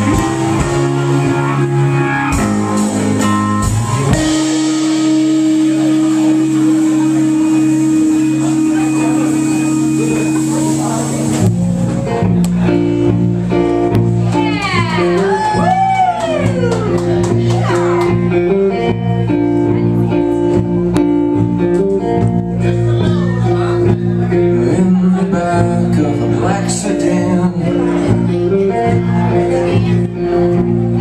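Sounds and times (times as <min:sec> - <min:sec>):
rock band guitar chord drone: 0:00.0 - 0:31.0.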